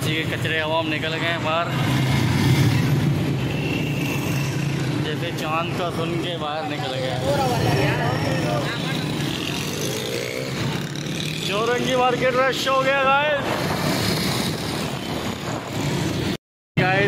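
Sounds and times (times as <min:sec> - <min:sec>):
motorcycle and car engines rumbling: 0:00.0 - 0:17.0
crowd voices: 0:06.3 - 0:10.2.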